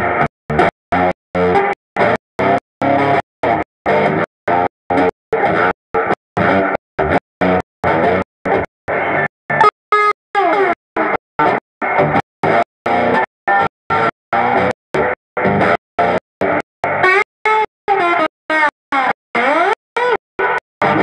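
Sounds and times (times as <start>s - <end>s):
electric blues guitar with delay: 0.0s - 21.0s.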